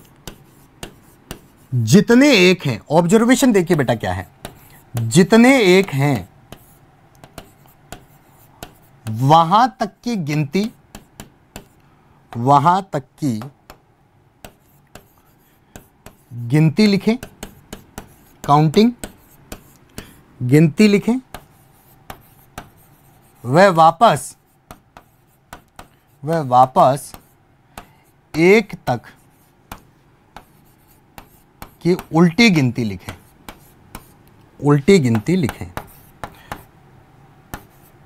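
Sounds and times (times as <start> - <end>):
chalk writing on blackboard: 0.0 - 1.8, 3.5 - 12.4, 14.4 - 20.2, 21.0 - 36.7, 37.5 - 38.0
marker scratching on a board: 0.0 - 13.8, 14.4 - 20.2, 20.8 - 36.7, 37.5 - 38.0.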